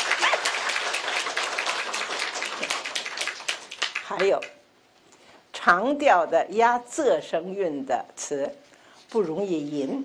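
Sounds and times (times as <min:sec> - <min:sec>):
audience applauding: 0:00.0 - 0:04.5.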